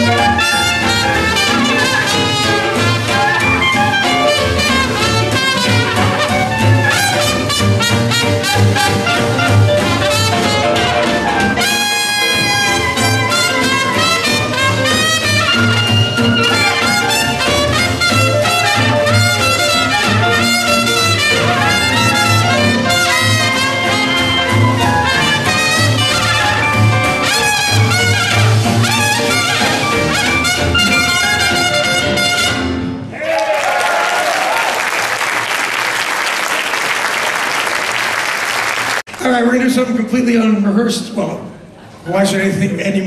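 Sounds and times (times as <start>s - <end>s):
jazz band playing: 0.0s - 33.3s.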